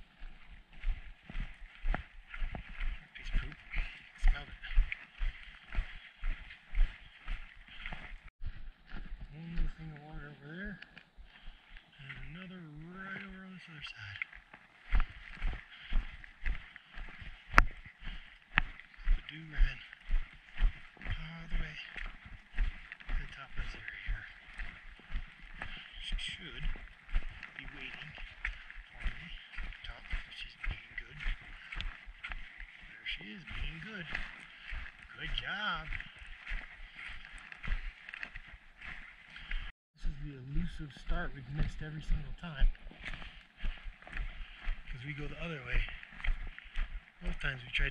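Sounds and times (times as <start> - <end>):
footsteps on rocky dirt trail: 0.0 - 47.9
man making wordless sounds: 2.9 - 4.9, 9.0 - 10.8, 12.0 - 14.2, 19.0 - 19.9, 21.0 - 22.0, 23.1 - 24.3, 25.6 - 26.8, 27.6 - 28.2, 29.0 - 31.3, 32.9 - 34.3, 35.1 - 36.0, 40.0 - 42.7, 44.9 - 45.9, 47.2 - 47.9.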